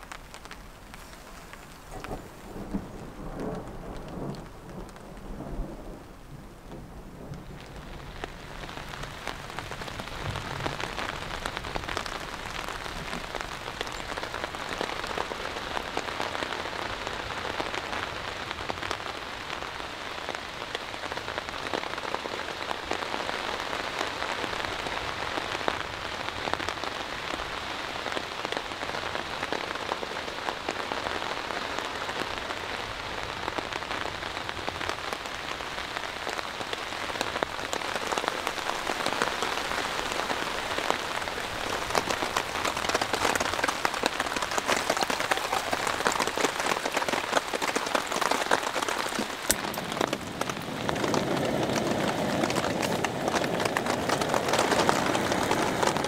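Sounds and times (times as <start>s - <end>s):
raindrops ticking sharply: 0.0s - 26.0s, 34.1s - 56.0s
steady rain falling: 0.0s - 56.0s.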